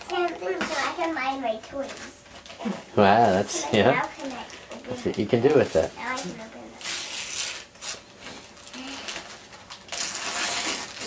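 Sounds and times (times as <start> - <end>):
wrapping paper rustling and crinkling: 1.8 - 11.0.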